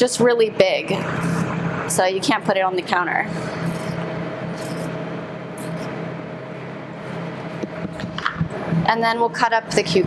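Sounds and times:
ventilation hum: 0.0s - 10.0s
peeler scraping cucumber: 3.6s - 4.0s, 4.6s - 4.9s, 5.6s - 5.9s.

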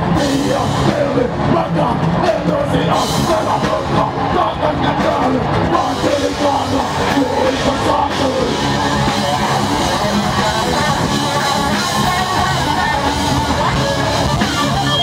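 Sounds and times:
metal band playing: 0.0s - 15.0s.

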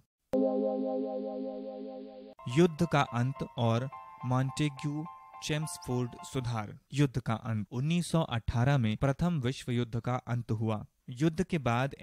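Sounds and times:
synthesized chord sting: 0.4s - 6.4s.

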